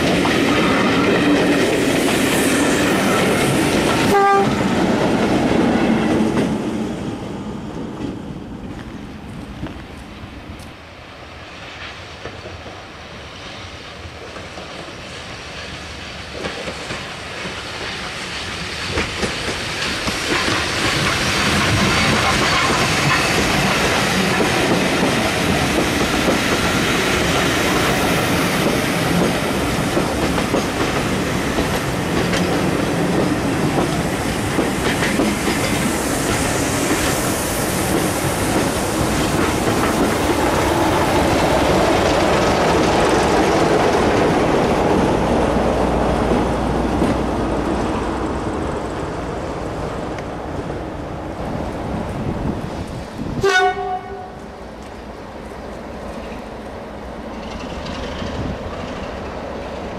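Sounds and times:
steam train passing: 0:00.0 - 0:59.9
train wheels rolling on rails: 0:00.0 - 0:59.9.

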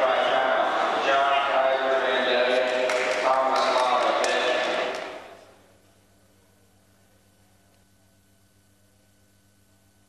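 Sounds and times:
echoing voices: 0:00.0 - 0:05.5.

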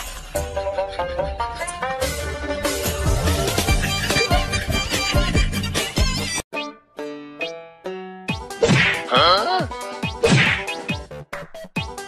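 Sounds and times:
background music: 0:00.0 - 0:12.0
sharp whack: 0:08.6 - 0:09.2, 0:10.2 - 0:10.8.

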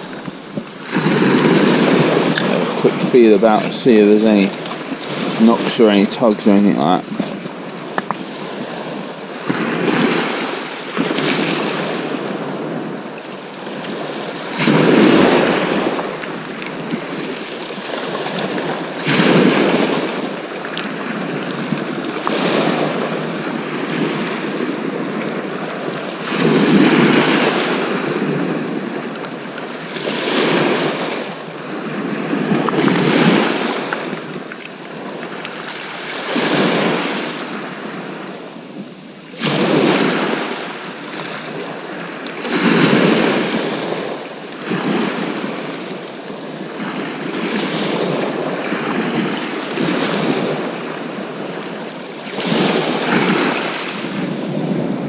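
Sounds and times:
sea waves breaking on shore: 0:00.0 - 0:55.0
wind on microphone: 0:00.0 - 0:55.0.

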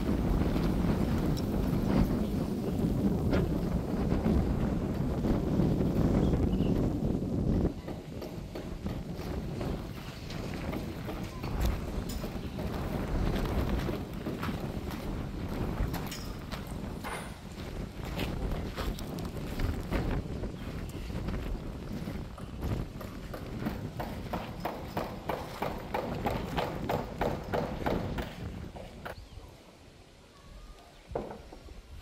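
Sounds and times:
wind rumble on microphone: 0:00.0 - 0:32.0
footsteps on gravel: 0:09.0 - 0:27.2.

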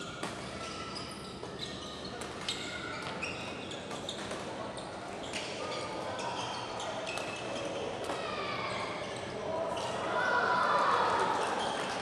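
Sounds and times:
voices in sports hall: 0:00.0 - 0:12.0.

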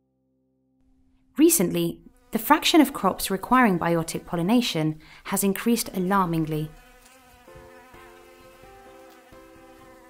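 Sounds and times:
bee buzzing in flight: 0:01.6 - 0:04.4, 0:05.9 - 0:10.0.

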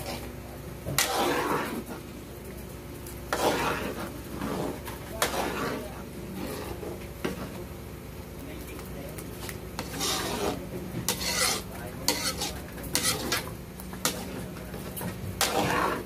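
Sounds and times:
metal ladle scraping a wok: 0:00.9 - 0:02.0, 0:03.3 - 0:07.5, 0:09.4 - 0:14.4, 0:15.4 - 0:16.0.

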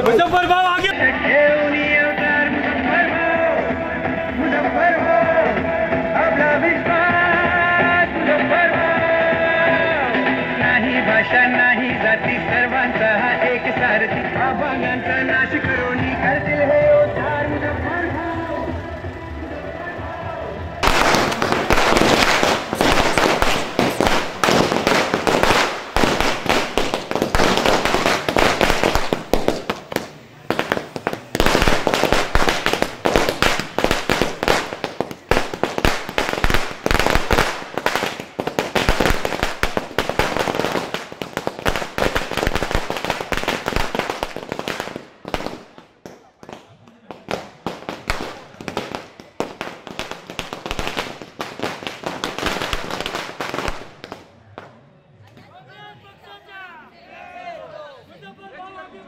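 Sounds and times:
firecrackers banging: 0:00.0 - 0:54.8.

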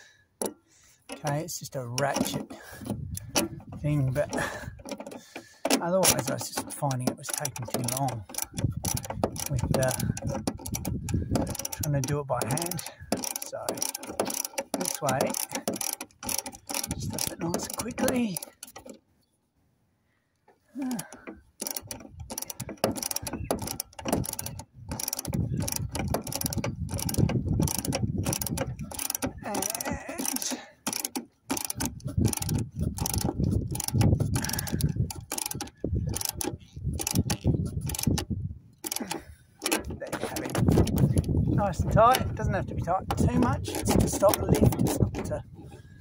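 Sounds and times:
ratchet spanner clicking: 0:00.4 - 0:19.0, 0:20.9 - 0:45.7.

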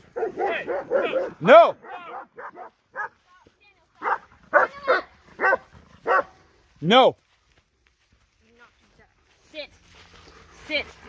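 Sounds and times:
dogs barking: 0:00.0 - 0:03.2, 0:04.0 - 0:06.4.

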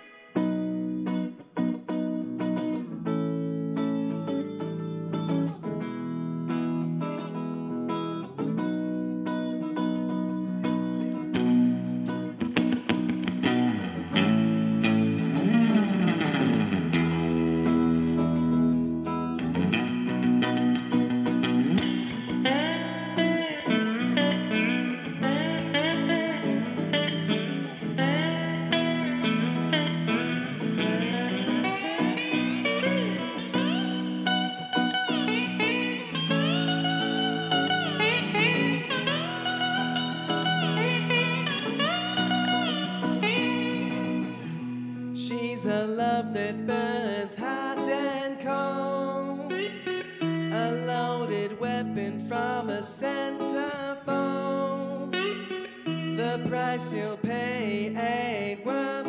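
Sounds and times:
electric guitar lead line: 0:00.0 - 0:59.0
live band playing: 0:09.2 - 0:44.8.

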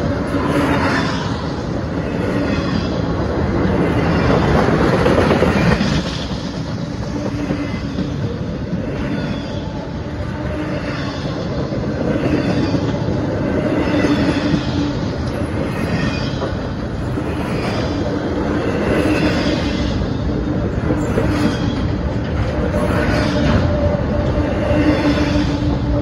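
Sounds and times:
freight train wheels rumbling on rails: 0:00.0 - 0:26.0.

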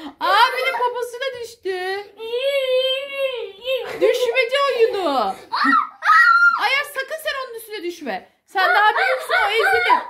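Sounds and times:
young child squealing: 0:05.5 - 0:06.7.

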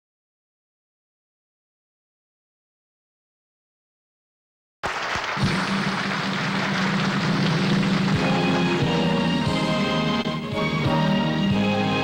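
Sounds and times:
loud rushing noise: 0:05.4 - 0:08.9
accompaniment music: 0:05.4 - 0:12.0.

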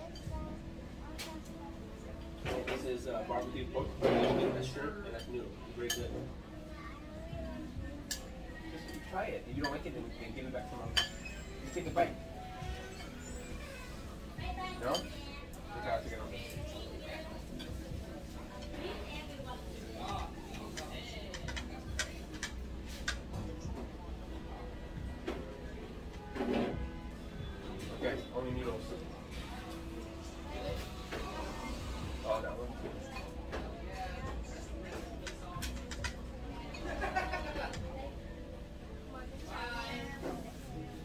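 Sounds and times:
faint background music: 0:00.0 - 0:41.0.

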